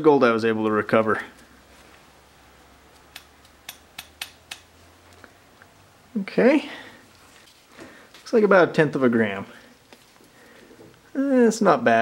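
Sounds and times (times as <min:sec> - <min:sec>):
metal spoon tapping: 0:03.1 - 0:04.7.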